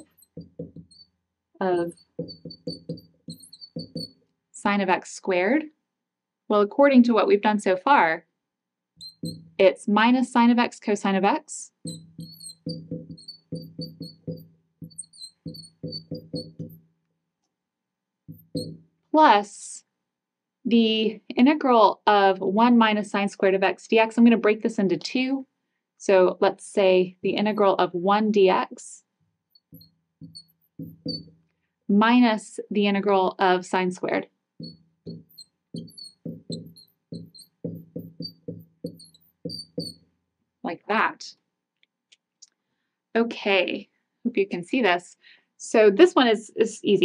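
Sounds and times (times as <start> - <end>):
marker squeaking on glass: 0.0 - 4.2, 9.0 - 9.6, 11.7 - 16.9, 18.3 - 18.9, 27.3 - 27.9, 29.5 - 31.5, 34.0 - 40.1.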